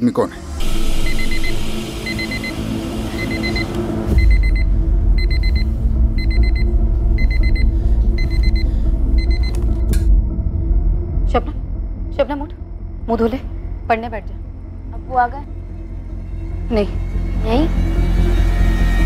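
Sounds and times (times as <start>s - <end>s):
alarm clock beeping: 1.0s - 9.5s.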